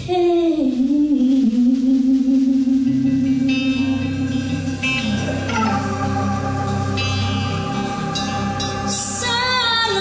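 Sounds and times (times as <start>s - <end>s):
bass line: 0.0s - 10.0s
held low note: 0.9s - 9.8s
electric guitar chords: 2.2s - 10.0s.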